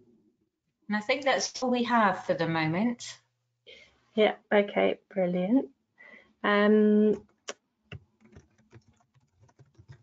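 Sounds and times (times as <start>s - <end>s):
faint typing on keyboard: 7.2s - 10.0s.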